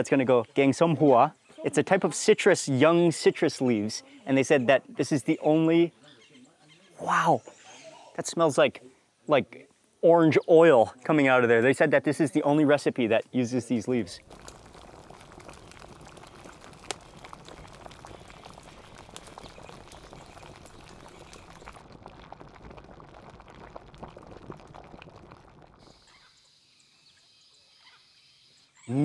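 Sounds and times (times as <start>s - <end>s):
pot bubbling at rolling boil: 13.7s - 27.6s.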